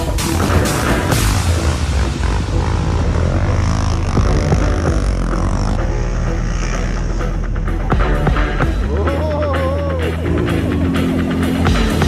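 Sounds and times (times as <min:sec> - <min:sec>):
quad bike engine revving: 0:00.0 - 0:12.0.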